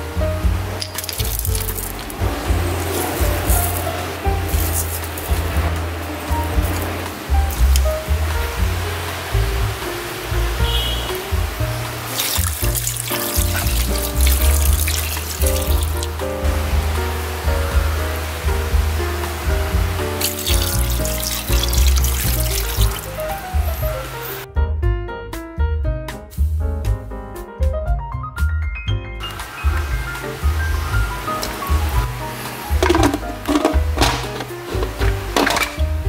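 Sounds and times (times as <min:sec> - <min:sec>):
background music with bass line: 0:00.0 - 0:36.0
water pouring into a pot: 0:00.8 - 0:07.8, 0:12.0 - 0:16.2, 0:20.1 - 0:23.4.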